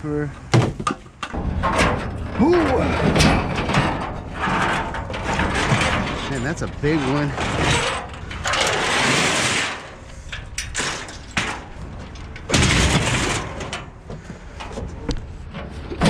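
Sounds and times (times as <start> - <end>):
metal knocks: 0.5 - 8.6
metal frame grating scrapes: 1.3 - 14.0.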